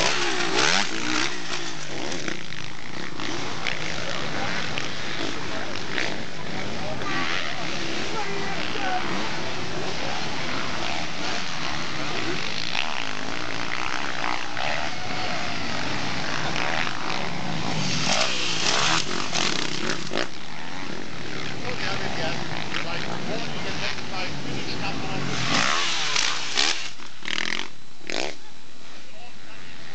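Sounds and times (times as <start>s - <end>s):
motocross engines revving: 0.0s - 29.0s.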